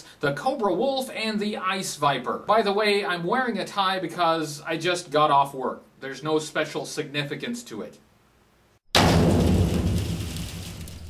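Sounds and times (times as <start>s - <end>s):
cinematic boom with low rumble: 9.0s - 11.0s.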